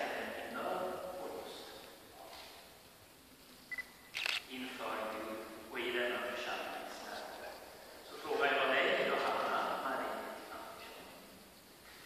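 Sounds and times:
person speaking in echoing church: 0.0s - 1.9s, 4.5s - 11.4s.

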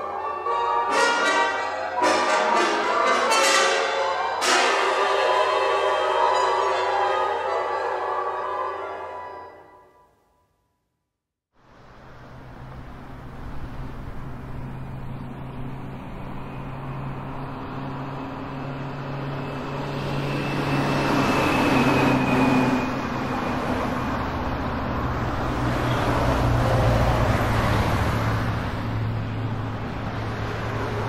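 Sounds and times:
avant-garde orchestral music: 0.0s - 10.2s.

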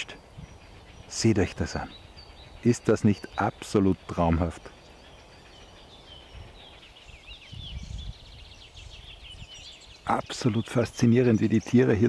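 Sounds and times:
faint outdoor background: 0.0s - 12.0s
songbird chirping: 0.0s - 12.0s.

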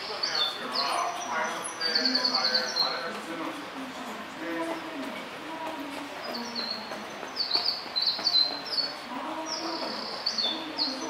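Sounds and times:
bird chirping: 0.0s - 3.1s, 6.2s - 11.0s
indistinct voices: 0.0s - 11.0s.

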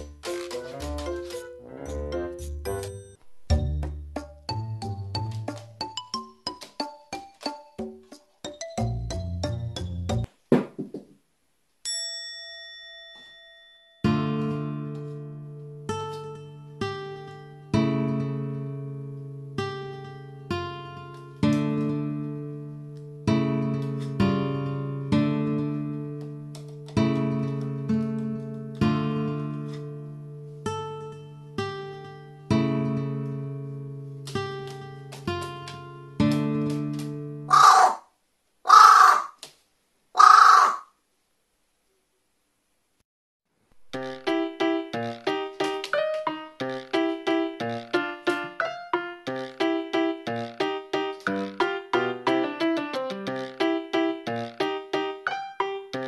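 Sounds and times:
bell-like chime ringing: 11.8s - 14.1s
acoustic guitar music: 14.1s - 37.5s
crow cawing: 37.5s - 38.0s, 38.7s - 39.4s, 40.2s - 40.9s.

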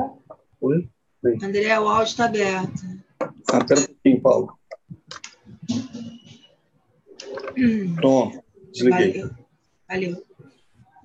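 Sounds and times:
computer clicks: 4.6s - 6.2s.

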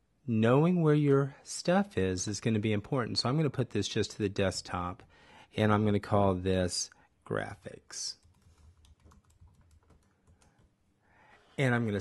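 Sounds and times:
typing on computer keyboard: 8.2s - 10.7s.

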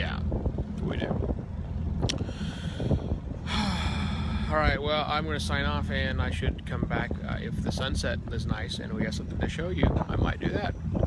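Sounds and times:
ferry engines humming: 0.0s - 11.0s
breath close to microphone: 2.2s - 4.5s.

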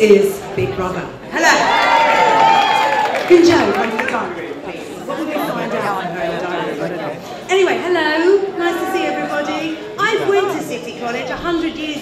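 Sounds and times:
voices talking in a hall: 0.0s - 12.0s.

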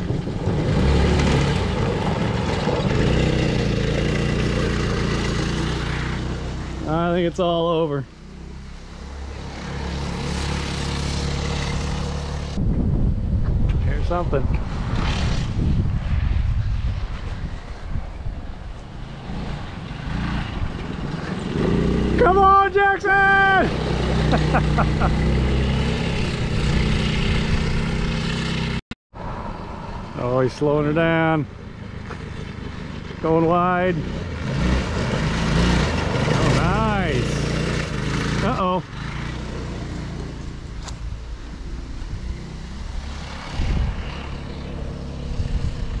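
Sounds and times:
wind rumbling on microphone: 0.0s - 5.6s, 11.8s - 22.0s, 25.4s - 28.4s, 39.7s - 46.0s
go-kart engine running: 0.0s - 7.1s, 8.2s - 12.6s, 19.9s - 22.5s, 23.1s - 28.8s, 31.8s - 46.0s.

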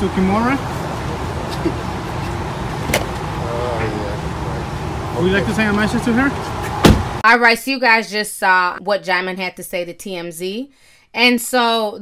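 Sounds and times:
road traffic rumble: 0.0s - 7.2s.

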